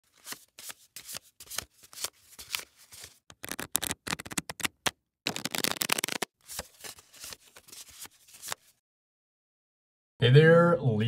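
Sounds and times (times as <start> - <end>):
cards being shuffled: 0.1 - 8.7.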